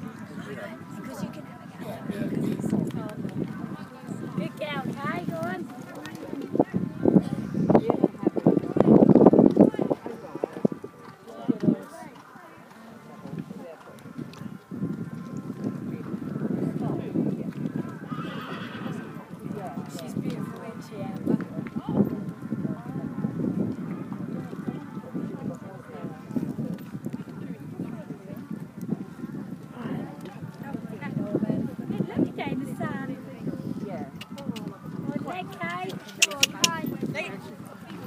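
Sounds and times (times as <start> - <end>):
horse hoofbeats cantering: 34.2 - 38.0.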